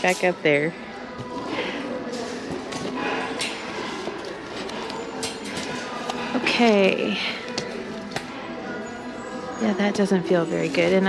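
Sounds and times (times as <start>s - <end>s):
distant voices: 0.0s - 11.0s
faint background music: 0.0s - 11.0s.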